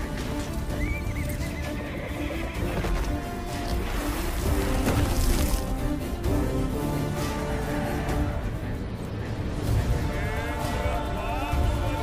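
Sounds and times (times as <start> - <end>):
dramatic background music: 0.0 - 12.0
horse whinnying: 0.6 - 2.9.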